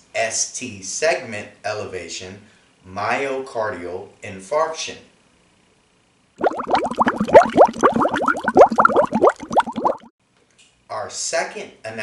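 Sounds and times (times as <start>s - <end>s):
bubbling pops: 6.4s - 10.1s.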